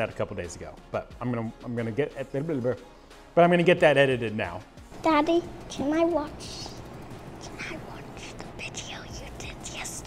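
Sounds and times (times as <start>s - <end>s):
girl whispering: 7.7s - 10.0s.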